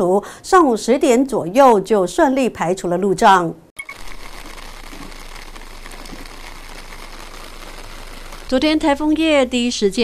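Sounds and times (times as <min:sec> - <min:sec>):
heavy rain hissing: 0:03.8 - 0:09.4.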